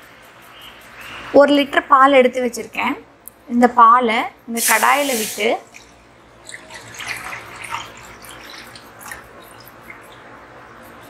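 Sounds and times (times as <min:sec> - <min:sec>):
milk pouring into metal pan: 0:04.7 - 0:10.2.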